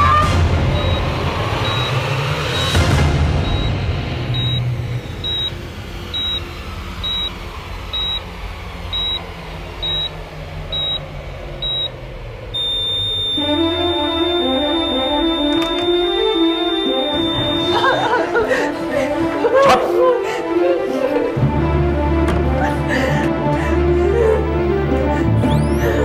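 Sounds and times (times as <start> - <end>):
low dark dramatic music: 0.0 - 12.6, 13.3 - 26.0
flatline alarm tone: 0.7 - 2.8, 3.4 - 3.8, 4.4 - 8.3, 8.9 - 18.5
patient monitor beeping: 0.7 - 2.8, 3.4 - 3.8, 4.4 - 8.3, 8.9 - 12.0, 12.6 - 18.7.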